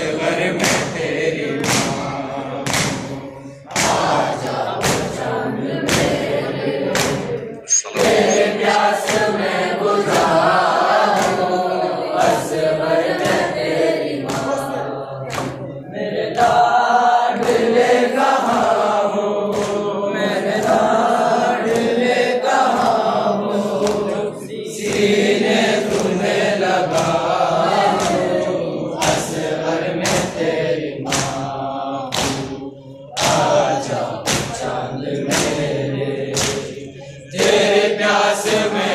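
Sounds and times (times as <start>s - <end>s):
group chanting a lament: 0.0s - 38.9s
sharp rhythmic beats: 0.0s - 38.9s.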